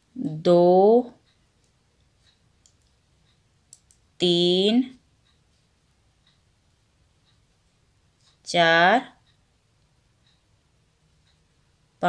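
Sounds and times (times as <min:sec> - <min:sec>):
knitting needles clicking: 0:01.2 - 0:04.2.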